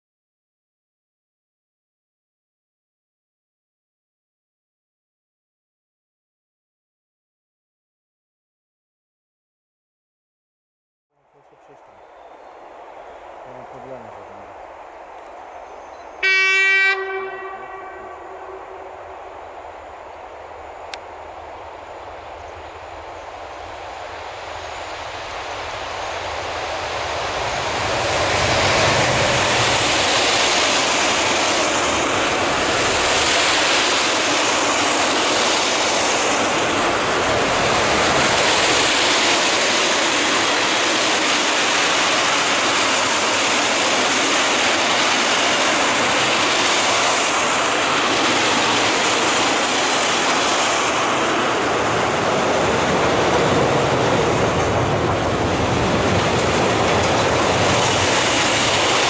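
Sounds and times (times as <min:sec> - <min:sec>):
electric locomotive passing: 0:11.2 - 0:59.0
wagon wheels on rails: 0:53.5 - 0:59.0.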